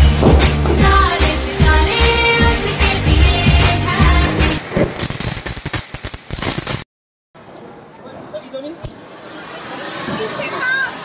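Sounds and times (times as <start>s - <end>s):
music with heavy beat: 0.0s - 4.6s
fountain firework crackling: 0.0s - 6.8s, 8.3s - 11.0s.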